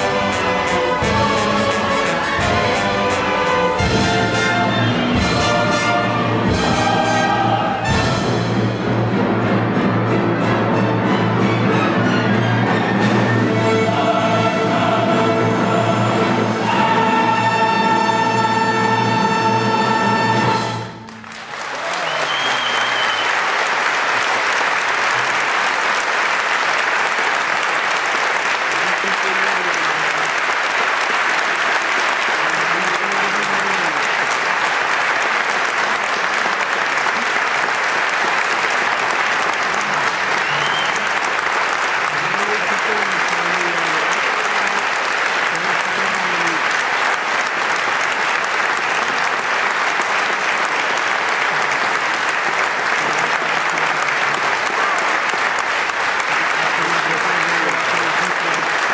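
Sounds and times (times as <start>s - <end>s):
audience applauding: 0.0s - 8.3s, 12.6s - 58.9s
voices through clapping: 21.1s - 58.9s.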